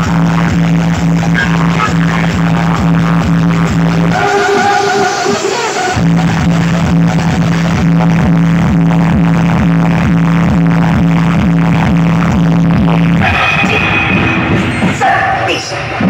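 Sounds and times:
electronic dance music: 0.0 - 16.0
heavy bass line: 0.0 - 16.0.

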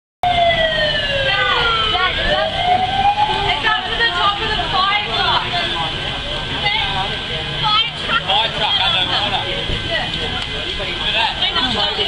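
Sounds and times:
fire truck siren wailing: 0.2 - 10.4.

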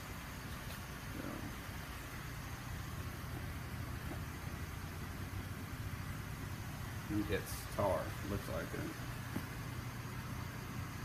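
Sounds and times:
faint hiss: 0.0 - 11.0
low hum: 0.0 - 11.0.

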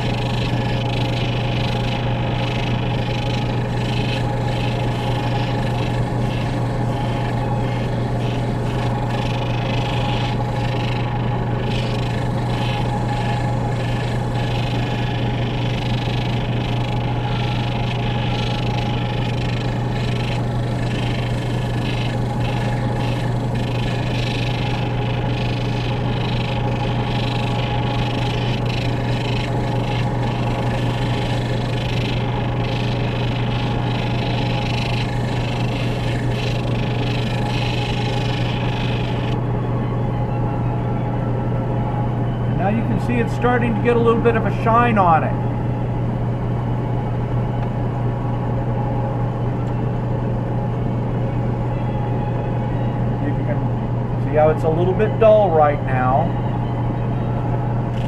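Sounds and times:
sander motor hum: 0.0 - 58.0.

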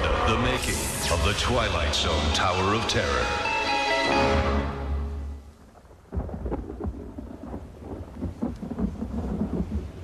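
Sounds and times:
rain: 0.0 - 10.0
thunder rumbling: 5.3 - 10.0.

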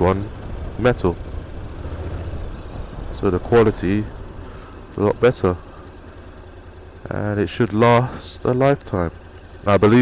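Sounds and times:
motorcycle engine low rumble: 0.0 - 10.0
road noise: 0.0 - 10.0.

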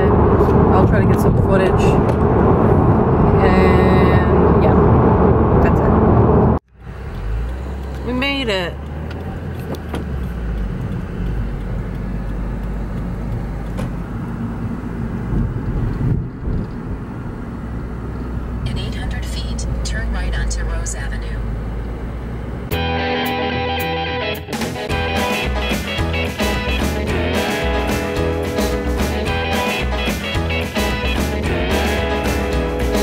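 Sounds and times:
car cabin road noise: 0.0 - 22.8.

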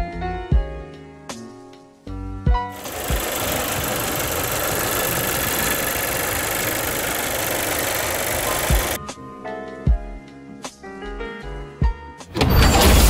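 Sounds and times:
car engine idling: 2.8 - 9.0.

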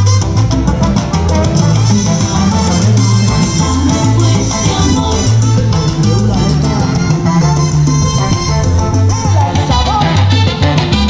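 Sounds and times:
dance music with heavy bass: 0.0 - 11.0.

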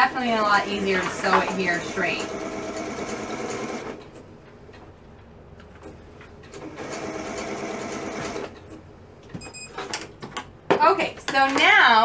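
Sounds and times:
sewing machine stitching: 0.6 - 4.1, 6.5 - 8.6.

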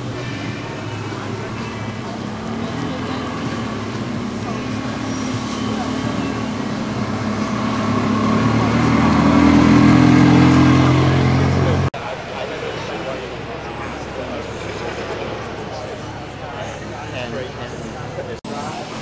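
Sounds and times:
car engine at low revs: 0.0 - 12.0
people talking: 0.0 - 19.0.

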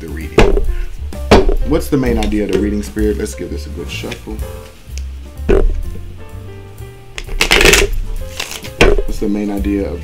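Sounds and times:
background music with low notes: 0.0 - 10.0
cards being shuffled: 7.2 - 9.1.

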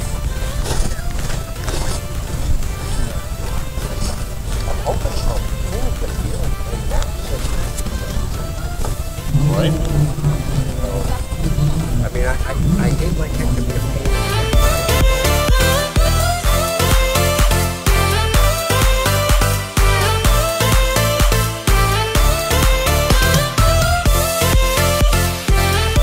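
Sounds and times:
distant people talking: 0.0 - 15.6
steady low rumble: 0.0 - 18.6
nearer person talking: 11.9 - 14.5.

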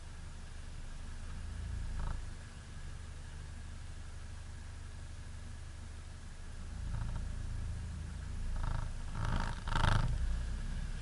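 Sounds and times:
off-road vehicle engine rumbling: 0.0 - 11.0.

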